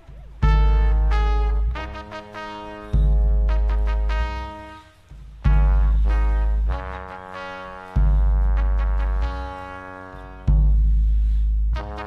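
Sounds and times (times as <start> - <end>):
bass: 0.0 - 12.0
brass section playing held chord: 0.4 - 10.8, 11.8 - 12.0.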